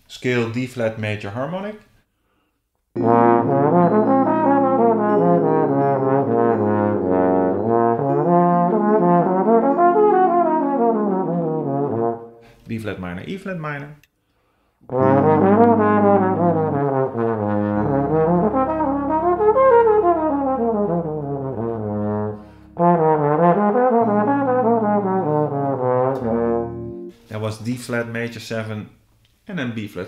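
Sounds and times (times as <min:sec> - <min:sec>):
person breathing: 0:02.0 - 0:02.7, 0:14.1 - 0:14.9, 0:22.4 - 0:22.8
trombone playing jazz phrases: 0:03.0 - 0:12.5, 0:14.9 - 0:27.7
person speaking: 0:27.2 - 0:30.0.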